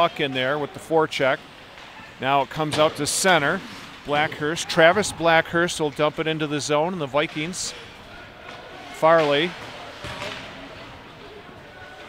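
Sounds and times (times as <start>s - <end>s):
faint arena voices: 0.0s - 12.0s
hiss of hockey play on ice: 0.1s - 12.0s.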